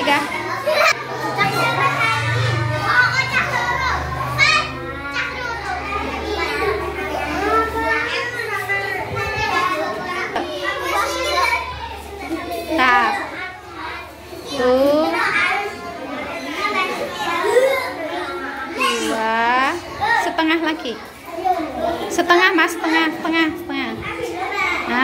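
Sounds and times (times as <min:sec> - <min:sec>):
young children chattering: 0:00.0 - 0:25.0.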